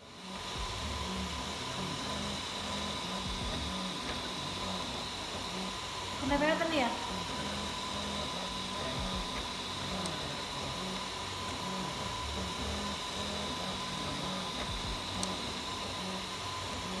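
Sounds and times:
cooling fan humming: 0.0s - 17.0s
printer motors whining: 0.0s - 17.0s.

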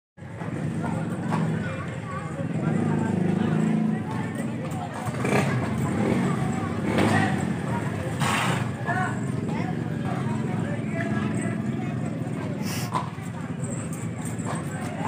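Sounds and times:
indistinct voices: 0.2s - 15.0s.

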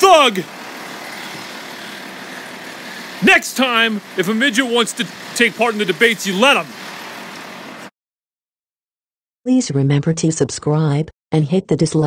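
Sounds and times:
rain hiss: 0.0s - 7.9s
street sound: 0.0s - 7.9s
vehicle running nearby: 0.0s - 7.9s.

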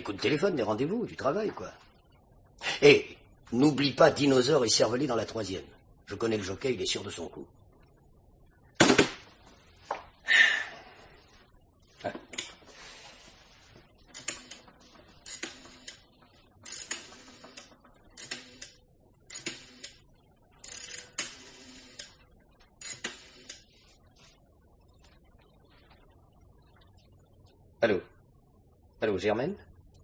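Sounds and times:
rotary telephone dial whirring: 14.2s - 20.0s, 20.6s - 22.2s, 22.8s - 23.7s.

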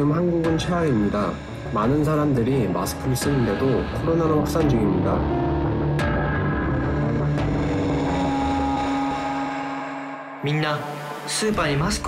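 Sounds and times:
low sustained drone: 0.0s - 11.3s.

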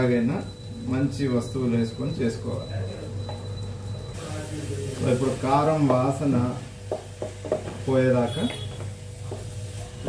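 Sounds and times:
light sizzling: 4.1s - 10.0s.

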